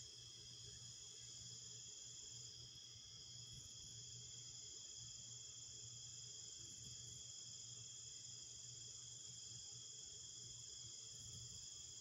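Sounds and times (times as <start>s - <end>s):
crickets chirping: 0.2s - 12.0s.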